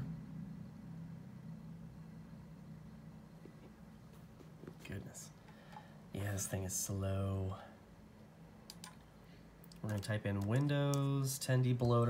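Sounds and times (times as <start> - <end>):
faint low hum: 0.0 - 12.0
soft clicks: 8.7 - 11.2.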